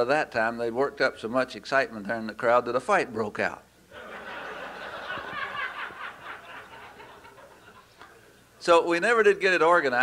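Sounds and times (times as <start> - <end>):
audience laughing: 4.0 - 8.2.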